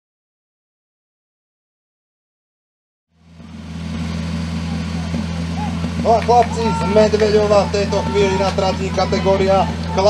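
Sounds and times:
pump engine running: 3.2s - 10.0s.

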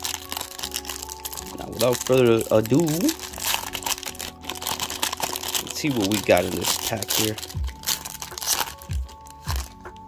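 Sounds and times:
foil wrapper crinkling: 0.0s - 10.0s
music with bass beat: 7.4s - 10.0s.

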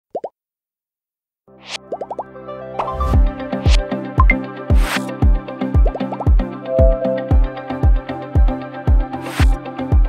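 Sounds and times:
background music: 1.6s - 10.0s
rising pop sound effects: 2.8s - 4.4s, 6.7s - 7.7s
low beat: 6.7s - 8.0s.

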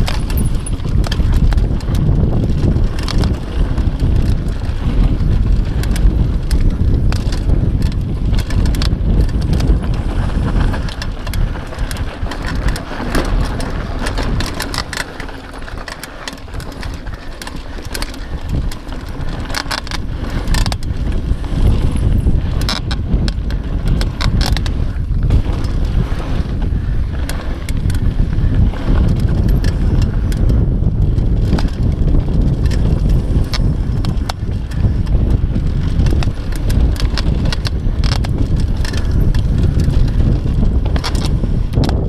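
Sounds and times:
bike rattling over bumps: 0.0s - 42.0s
tyres running over loose dirt: 0.0s - 42.0s
wind rumbling on microphone: 0.0s - 42.0s.

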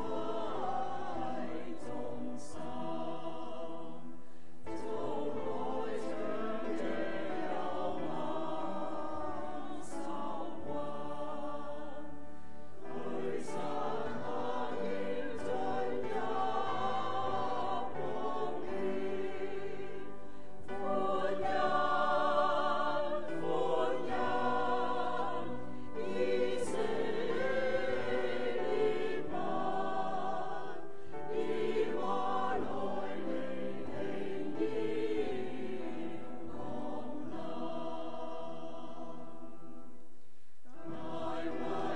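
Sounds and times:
choir singing a hymn: 0.0s - 40.1s, 40.7s - 41.9s
singers breathing: 4.1s - 4.7s, 20.2s - 20.7s, 30.9s - 31.3s.

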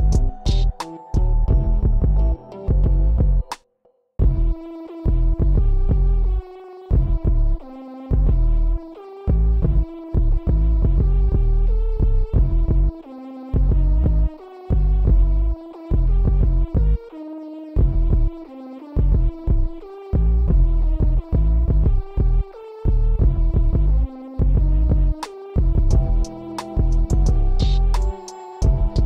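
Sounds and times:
heavy bass line: 0.0s - 3.5s, 4.2s - 13.0s, 13.6s - 17.0s, 17.8s - 18.4s, 19.0s - 29.0s
looping melodic sample: 0.0s - 3.5s, 25.9s - 29.0s.

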